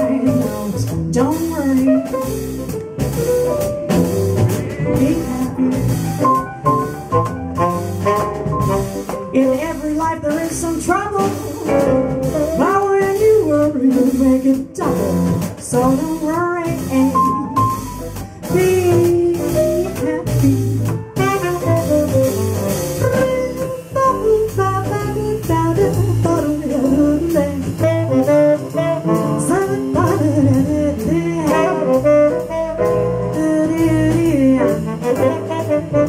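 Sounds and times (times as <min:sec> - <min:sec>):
upright bass: 0:00.0 - 0:36.0
tenor saxophone melody: 0:06.8 - 0:13.8, 0:27.8 - 0:30.2, 0:31.4 - 0:36.0.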